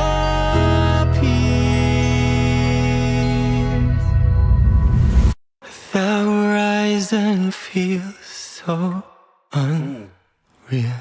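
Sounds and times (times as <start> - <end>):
man singing unaccompanied: 0.0 - 4.0, 5.6 - 11.0.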